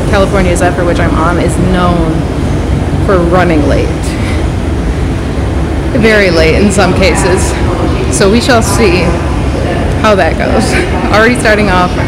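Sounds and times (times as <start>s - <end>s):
train station background rumble: 0.0s - 12.0s.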